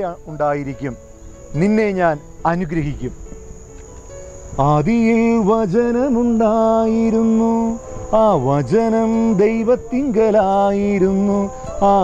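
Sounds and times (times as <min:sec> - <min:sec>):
man speaking: 0:00.0 - 0:01.0, 0:01.6 - 0:03.2
crickets trilling: 0:00.0 - 0:12.0.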